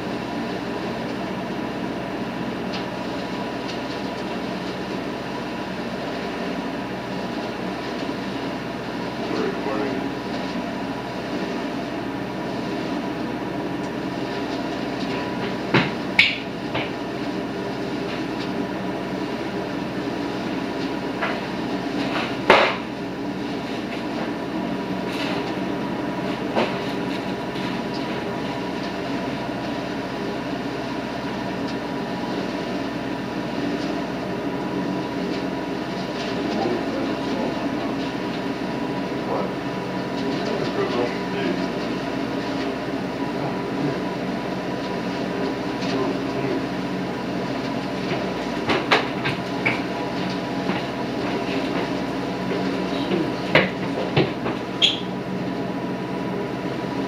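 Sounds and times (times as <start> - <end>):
leaf vacuum engine and fan drone: 0.0 - 57.0.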